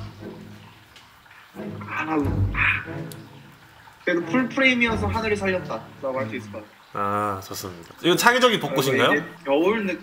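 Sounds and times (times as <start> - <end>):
man saying hesitant ah: 6.9 - 7.9.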